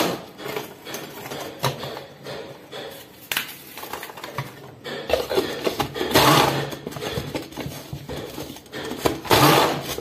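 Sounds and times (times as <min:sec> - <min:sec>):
kitchen appliance motor: 0:05.3 - 0:07.0, 0:09.0 - 0:10.0.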